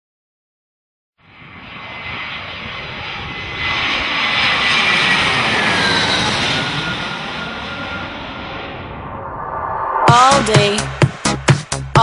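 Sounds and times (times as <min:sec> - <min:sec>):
jet aircraft engine whine: 0:01.2 - 0:11.3.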